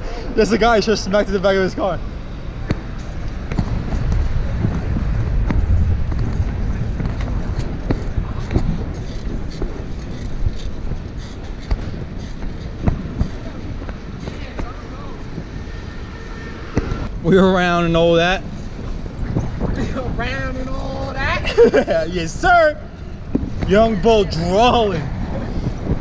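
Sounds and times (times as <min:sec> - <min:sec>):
road and traffic noise: 0:00.0 - 0:26.0
wind rumbling on microphone: 0:01.9 - 0:26.0.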